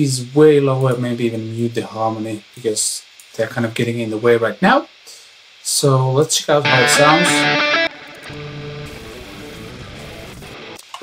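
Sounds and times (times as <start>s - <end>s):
distorted electric guitar pop punk: 6.6s - 11.0s.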